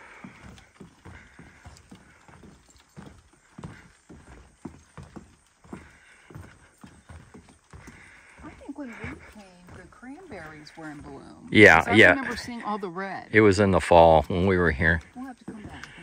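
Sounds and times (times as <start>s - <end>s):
footsteps on wooden boardwalk: 0.0s - 16.0s.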